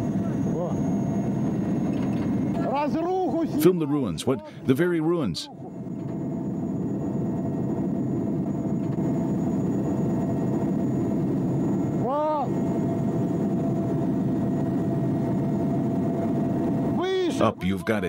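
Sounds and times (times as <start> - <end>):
helicopter engine and rotor: 0.0 - 18.0.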